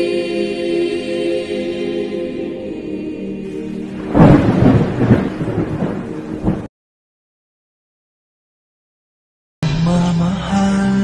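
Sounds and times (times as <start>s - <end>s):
choral music: 0.0s - 6.7s, 9.6s - 11.0s
rain: 3.4s - 6.7s
loud thunder rumble: 4.0s - 6.7s.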